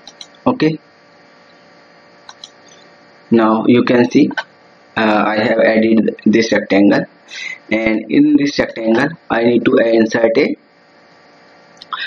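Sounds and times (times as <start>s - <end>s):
computer mouse clicks: 0.0s - 0.4s, 2.3s - 2.6s
faint hiss and hum: 0.0s - 12.0s.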